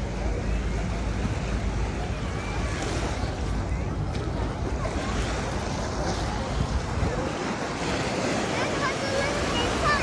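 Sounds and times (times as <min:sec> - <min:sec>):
distant voices: 0:00.0 - 0:10.0
waves washing onto sandy shore: 0:00.0 - 0:10.0
wind buffeting microphone: 0:00.0 - 0:10.0.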